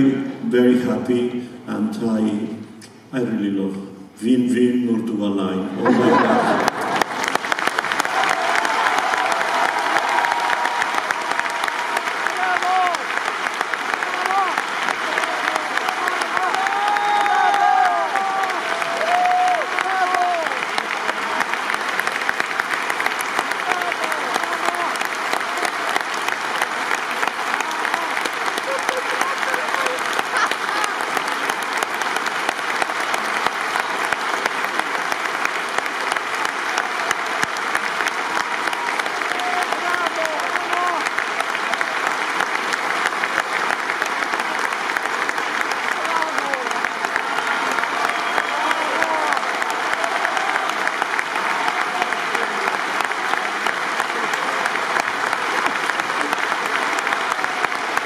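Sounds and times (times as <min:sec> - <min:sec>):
audience applauding: 0:05.8 - 0:58.0.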